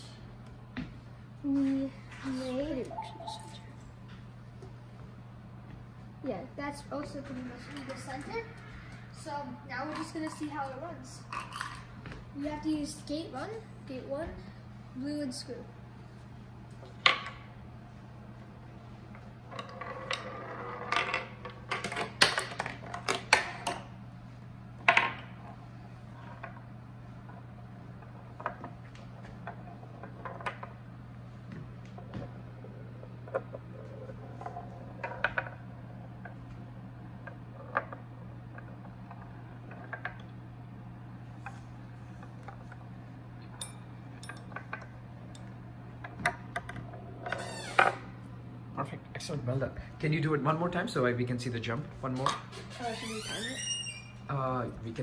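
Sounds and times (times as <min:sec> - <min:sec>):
low hum: 0:23.8 - 0:50.0.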